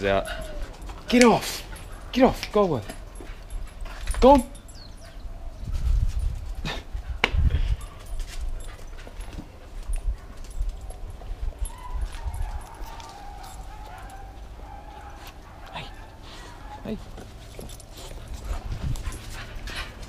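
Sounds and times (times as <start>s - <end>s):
dogs whining and yipping: 0.0s - 2.1s, 2.9s - 7.0s, 7.6s - 20.0s.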